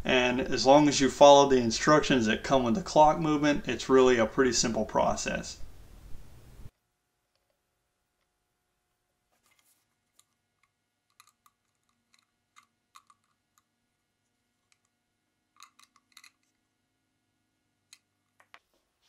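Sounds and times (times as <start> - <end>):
small clicks: 10.2 - 13.7, 15.6 - 16.6.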